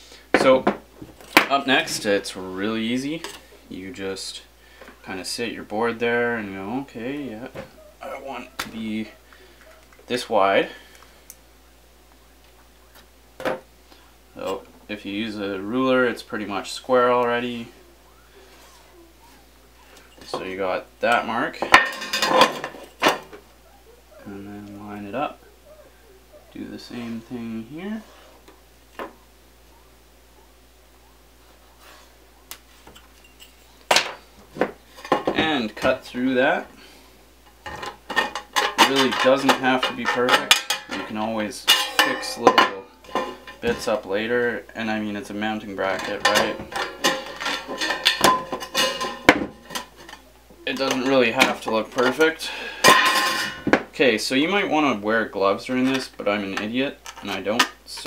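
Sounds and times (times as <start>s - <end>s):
thin metal rattling: 45.9s - 51.5s.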